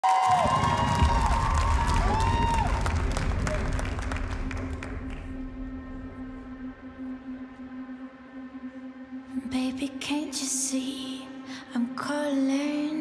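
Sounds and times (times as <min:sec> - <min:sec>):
audience cheering and clapping: 0:00.0 - 0:05.6
low steady musical tone: 0:03.0 - 0:13.0.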